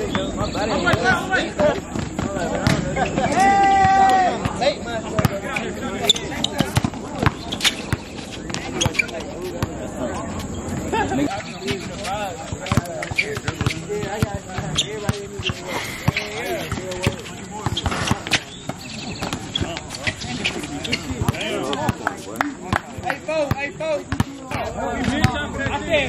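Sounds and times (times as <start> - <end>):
players calling out: 0.0 - 26.0
basketball dribbled on hard court: 12.5 - 19.9.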